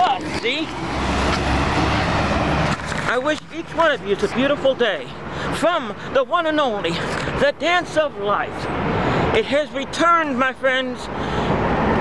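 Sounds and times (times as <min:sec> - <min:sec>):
road traffic tyre noise: 0:00.0 - 0:12.0.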